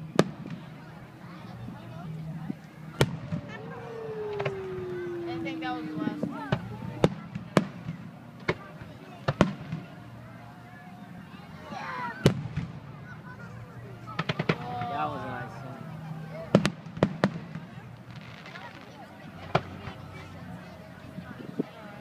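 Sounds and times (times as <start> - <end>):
fireworks crackling: 2.2 - 10.0, 14.1 - 20.4
fireworks bangs: 2.7 - 10.0, 14.2 - 20.4.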